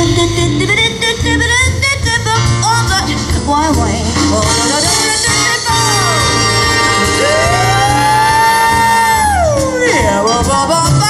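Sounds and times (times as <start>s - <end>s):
big band playing: 0.0s - 11.0s.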